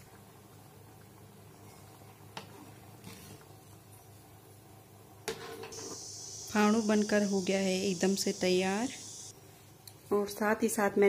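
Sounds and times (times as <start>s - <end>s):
steady low hum: 5.8s - 9.4s.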